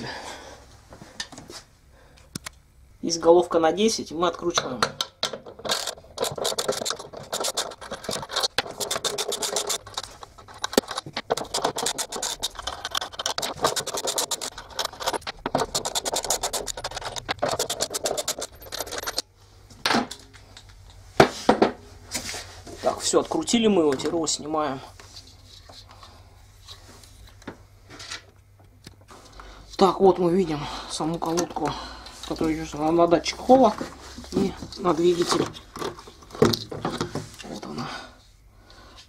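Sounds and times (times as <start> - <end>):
ratchet wrench clicking: 5.7 - 19.2.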